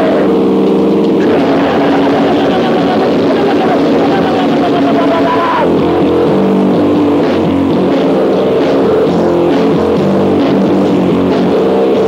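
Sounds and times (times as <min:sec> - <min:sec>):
distorted thrash metal band: 0:00.0 - 0:12.0.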